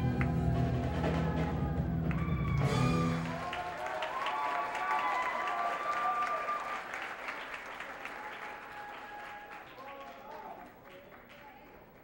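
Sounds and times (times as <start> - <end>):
audience applauding: 2.1 - 12.0.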